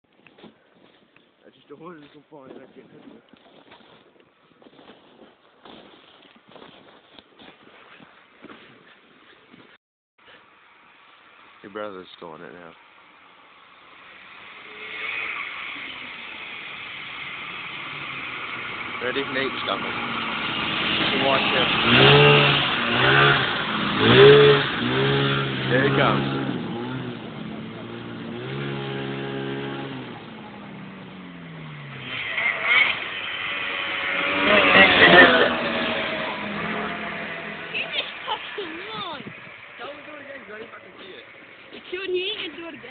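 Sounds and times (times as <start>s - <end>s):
snowmobile engine: 10.2s - 42.9s.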